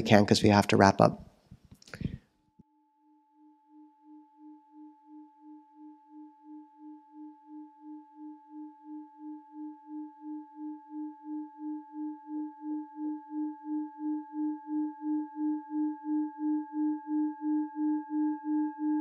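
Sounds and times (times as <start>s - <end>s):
singing bowl ringing: 2.6s - 19.0s.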